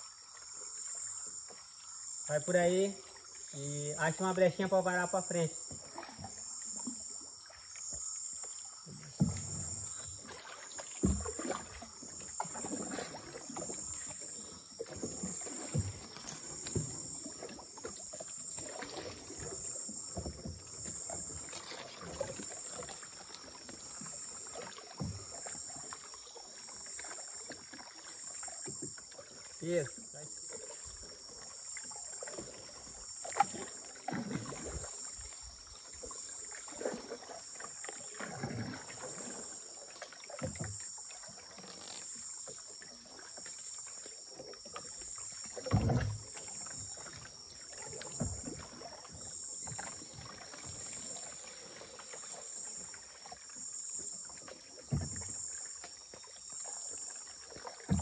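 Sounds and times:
insects buzzing: 0.0 - 58.0
paddle strokes splashing in water: 0.0 - 58.0
paddle knocking wooden hull: 7.8 - 58.0.

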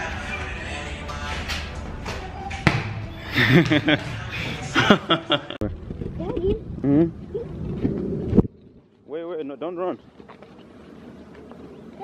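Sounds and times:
wind buffeting microphone: 5.6 - 9.1.

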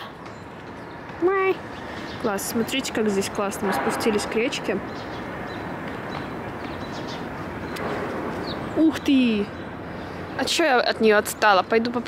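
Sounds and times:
distant city traffic hum: 0.0 - 12.0.

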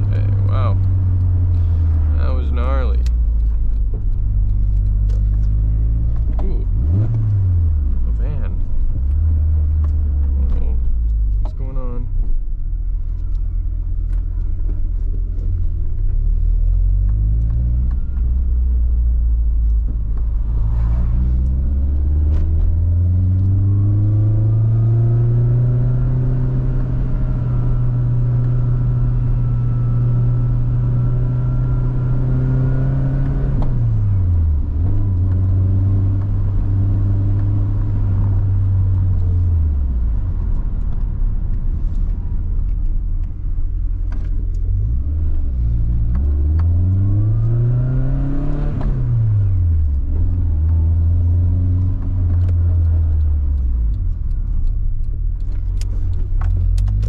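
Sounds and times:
car engine revving: 0.0 - 57.0.

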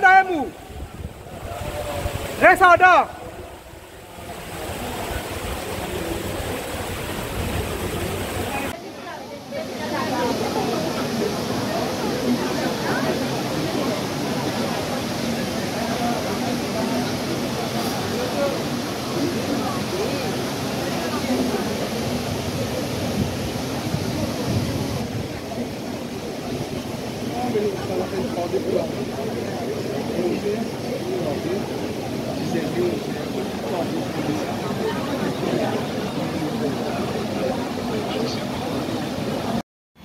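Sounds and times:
crowd talking: 0.0 - 39.6
floodwater rushing: 0.0 - 39.6.

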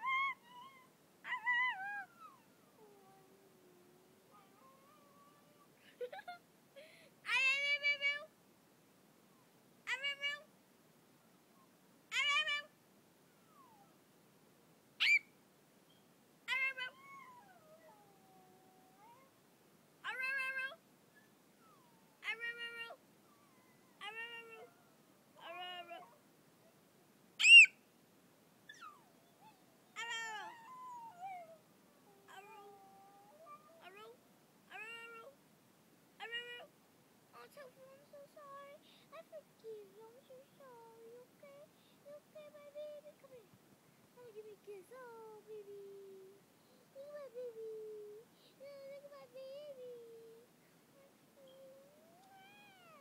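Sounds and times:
small dog howling: 0.0 - 5.7, 12.1 - 12.7, 13.4 - 14.0, 16.5 - 19.3, 20.0 - 20.8, 21.6 - 26.2, 28.7 - 34.1, 51.0 - 53.0.

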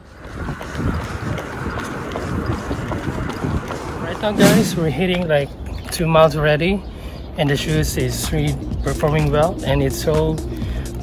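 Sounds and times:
wind buffeting microphone: 0.0 - 5.9
footsteps on pavement: 0.0 - 6.8.

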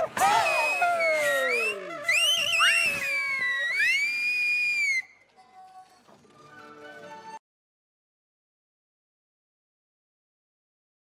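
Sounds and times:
opera singers sliding cries: 0.1 - 5.0.

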